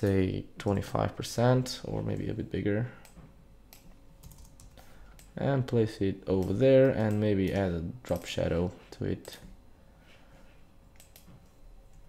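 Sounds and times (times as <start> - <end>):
computer keyboard clicks: 3.0 - 5.4, 6.4 - 8.3, 11.0 - 12.0.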